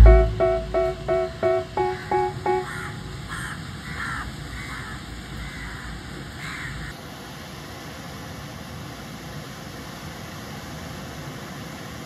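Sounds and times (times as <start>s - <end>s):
plucked guitar notes: 0.0s - 3.2s
low background rumble: 0.0s - 3.3s
bird cawing: 2.6s - 6.9s.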